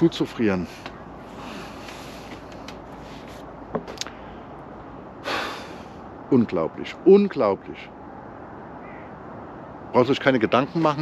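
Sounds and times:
outdoor background noise: 0.0s - 11.0s.

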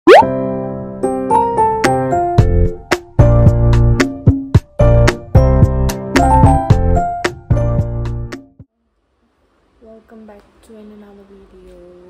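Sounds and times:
upward-sliding pop effect: 0.1s - 0.3s
playful keyboard tune: 0.1s - 0.5s.

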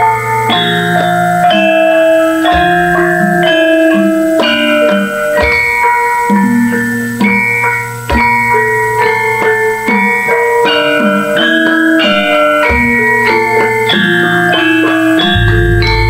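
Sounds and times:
gamelan ensemble playing: 0.0s - 16.0s
deep gong strokes: 15.2s - 16.0s.

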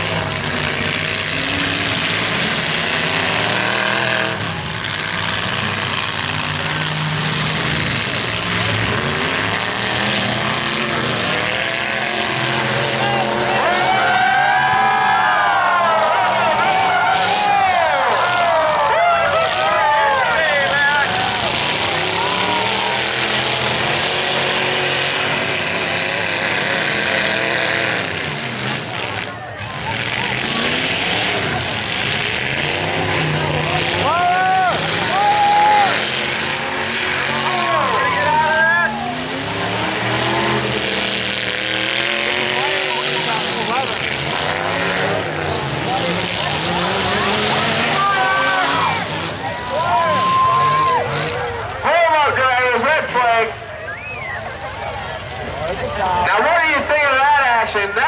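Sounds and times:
crowd noise: 0.0s - 58.0s
truck engines revving: 0.0s - 58.0s.

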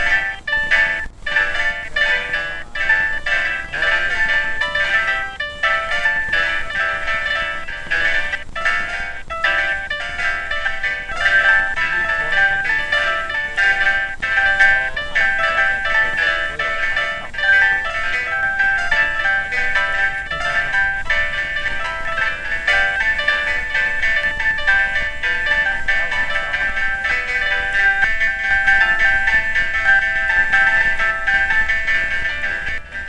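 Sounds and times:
high computer-generated chiming notes: 0.0s - 33.0s
steady high electronic tone: 0.0s - 33.0s.

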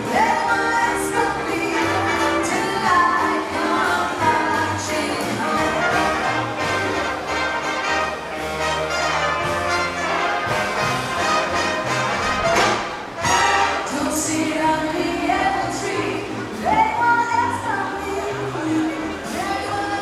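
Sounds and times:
female singers: 0.0s - 6.4s, 13.3s - 20.0s
saxophone and brass: 0.0s - 16.6s
keyboard: 0.0s - 20.0s.

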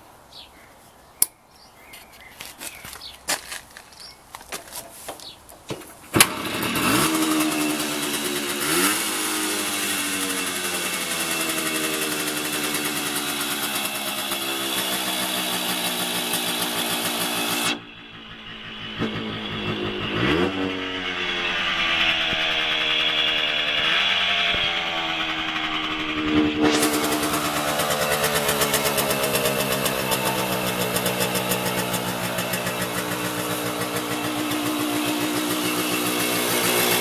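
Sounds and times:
motorcycle engine starting and revving: 6.0s - 37.0s.

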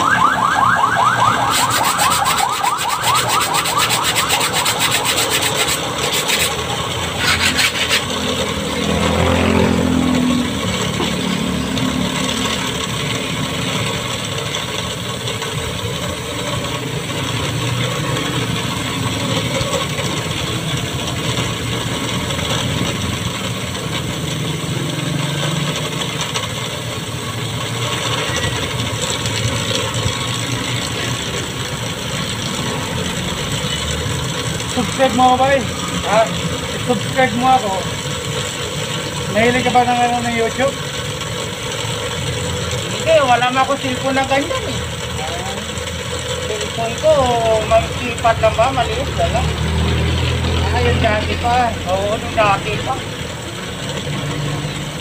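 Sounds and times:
metal file rasping on saw teeth: 1.5s - 8.2s.

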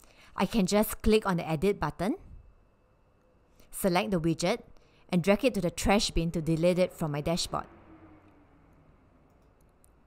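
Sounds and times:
faint background hum: 0.0s - 10.0s
computer mouse clicks: 8.7s - 10.0s.

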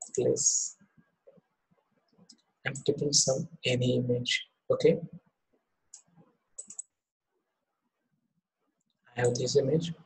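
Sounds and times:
computer mouse clicks: 5.9s - 7.0s.

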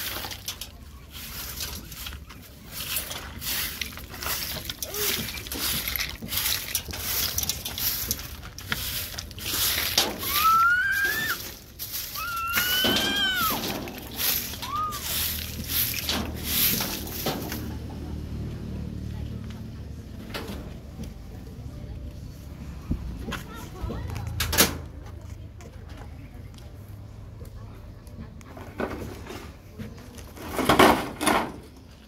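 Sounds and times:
broom sweeping gravel floor: 0.0s - 23.8s.

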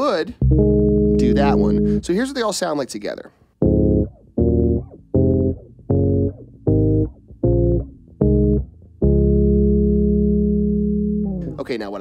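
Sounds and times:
electric bass playing chords: 0.0s - 2.3s, 3.6s - 12.0s.

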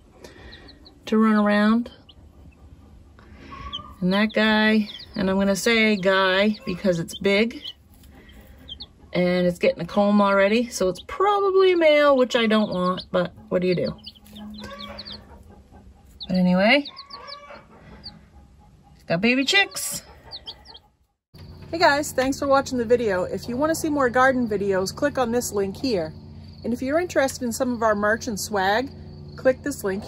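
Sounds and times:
baby chicks peeping: 0.0s - 30.0s.

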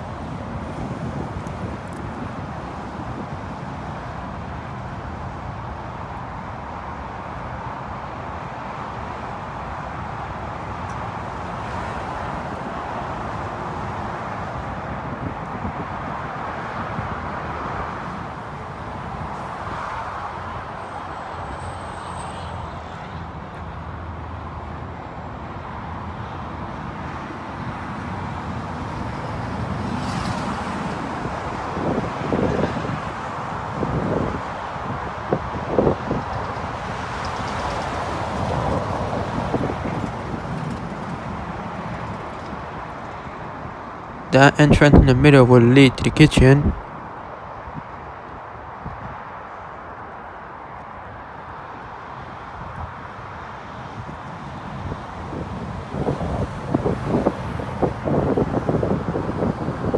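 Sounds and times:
road traffic: 0.0s - 59.9s.

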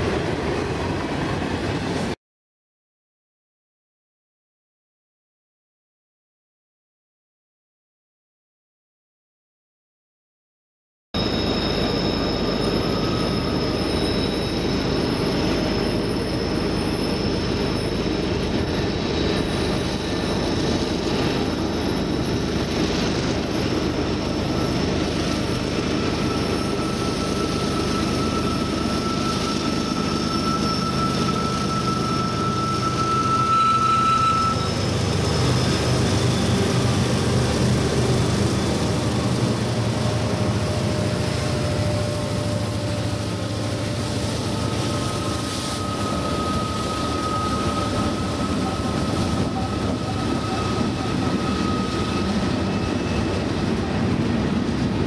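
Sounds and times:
diesel locomotive engines: 0.0s - 2.2s, 11.2s - 55.0s
freight train rumbling past: 0.0s - 2.2s, 11.2s - 55.0s
high wheel squeal: 11.2s - 54.5s.

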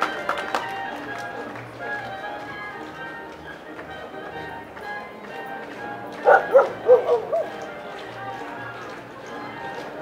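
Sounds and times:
background music: 0.0s - 10.0s
dog barking: 6.2s - 7.5s.

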